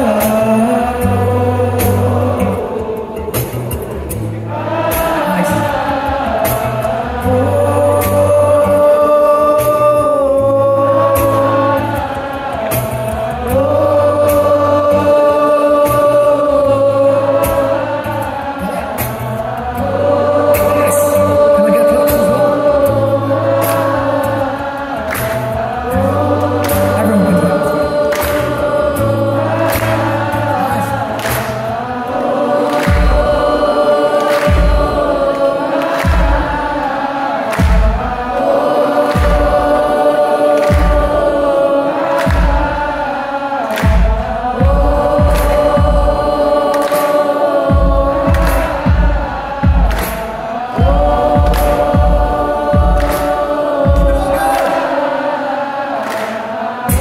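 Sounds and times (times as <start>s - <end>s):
audience singing along: 0.0s - 57.0s.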